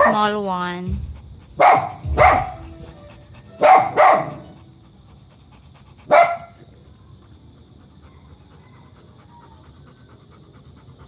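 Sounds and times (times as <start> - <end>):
dog barking: 0.0 - 0.3, 1.6 - 2.7, 3.6 - 4.6, 6.1 - 6.6.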